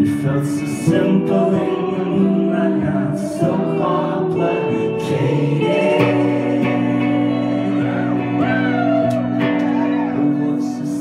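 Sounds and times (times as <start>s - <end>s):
live rock band playing: 1.0s - 11.0s.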